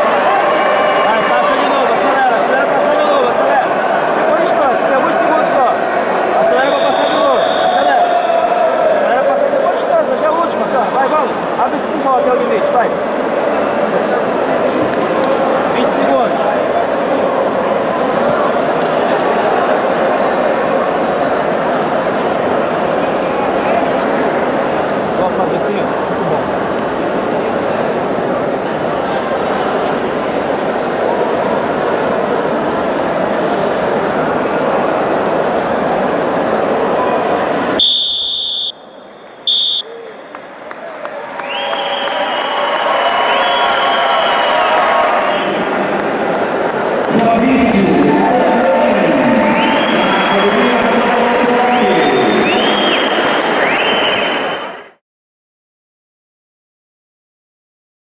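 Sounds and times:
crowd and coaches shouting: 0.0s - 11.4s
high steady tone: 37.8s - 39.9s.

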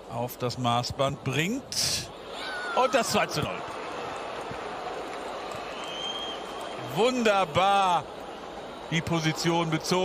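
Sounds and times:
crowd cheering and applauding: 2.6s - 7.6s.

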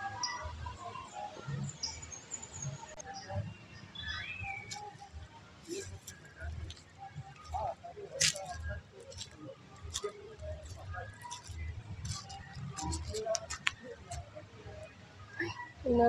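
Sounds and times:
faint voices talking: 0.0s - 16.0s.

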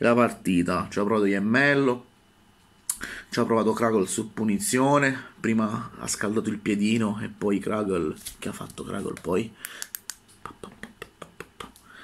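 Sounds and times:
sharp light clicks: 9.2s - 10.2s.

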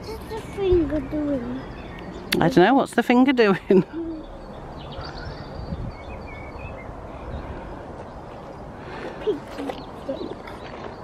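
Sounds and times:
wind rumble on microphone: 4.3s - 8.7s.

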